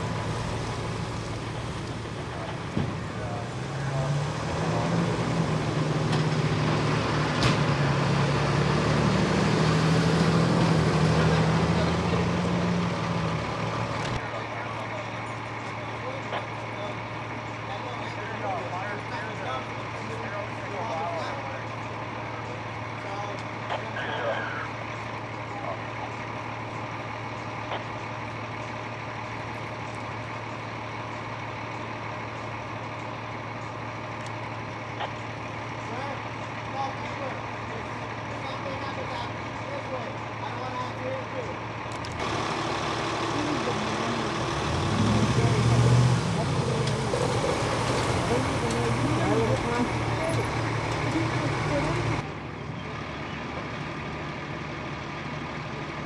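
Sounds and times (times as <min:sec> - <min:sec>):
diesel truck engine idling: 0:00.0 - 0:09.0, 0:09.8 - 0:56.0
distant voices: 0:00.0 - 0:56.0.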